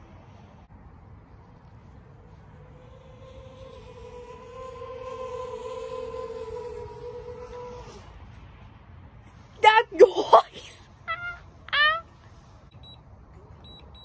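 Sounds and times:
drone propellers buzzing: 2.4s - 8.2s.

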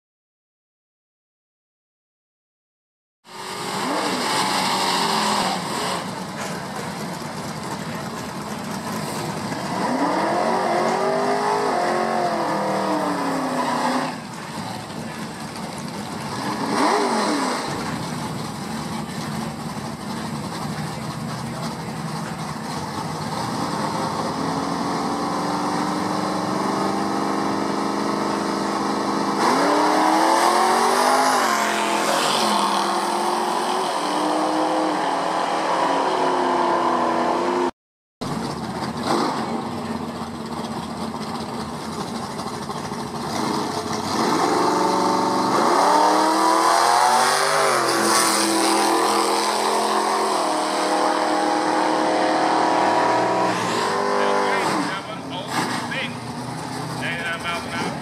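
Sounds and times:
car engines idling: 3.3s - 29.4s, 38.2s - 45.6s, 52.4s - 58.0s
cars accelerating with gear shifts: 3.3s - 58.0s.

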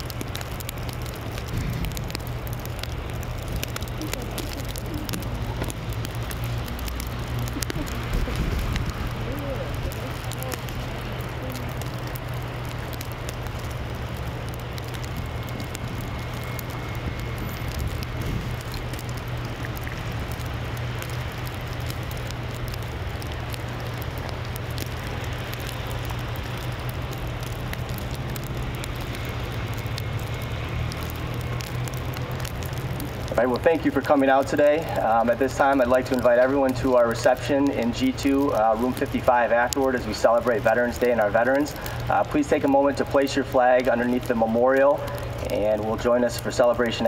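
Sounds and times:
wet snow pattering on canopy: 0.0s - 47.0s.

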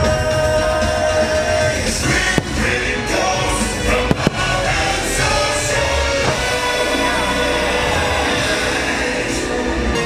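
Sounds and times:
loud music: 0.0s - 10.0s
firework bangs: 1.7s - 6.9s.

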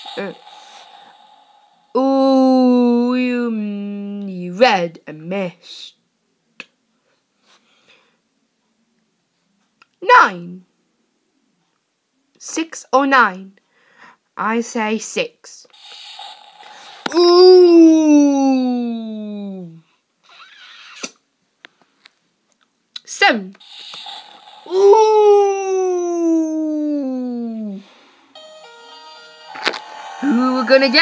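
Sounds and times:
faint breathy hiss: 13.6s - 14.4s, 27.6s - 28.3s.

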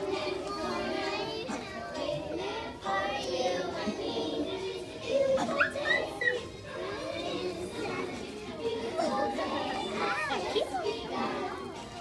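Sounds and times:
children chattering and calling out: 0.0s - 12.0s
faint music: 0.0s - 12.0s.

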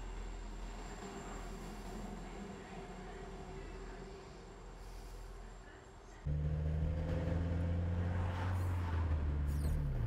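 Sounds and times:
van engine and road noise: 6.2s - 10.0s.

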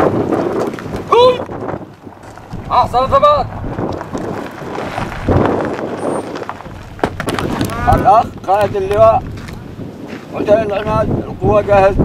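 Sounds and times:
wind buffeting microphone: 0.0s - 12.0s
man shouting: 1.1s - 1.4s.

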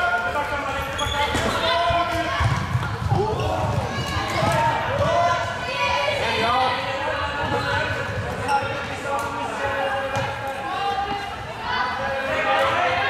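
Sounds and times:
shoes squeaking on floor: 0.8s - 2.1s, 7.5s - 9.0s.

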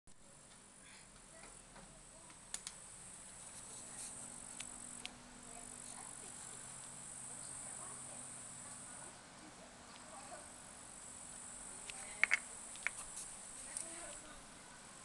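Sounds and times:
faint low hum: 0.1s - 15.0s
insects chirring: 2.2s - 9.2s, 9.9s - 14.4s.

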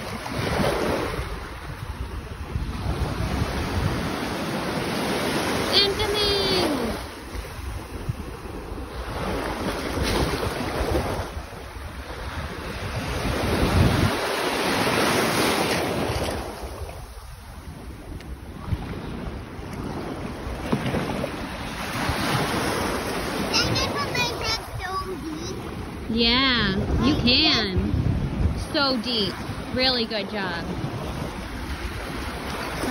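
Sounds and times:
wind buffeting microphone: 0.0s - 32.9s.

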